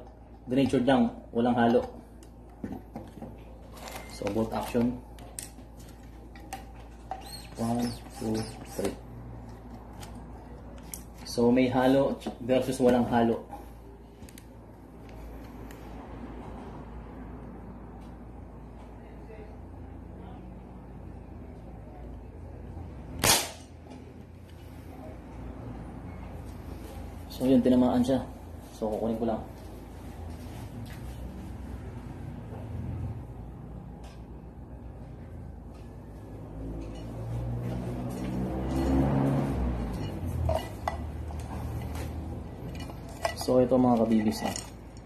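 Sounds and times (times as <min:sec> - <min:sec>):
tin cans clinking: 0:42.6 - 0:45.0.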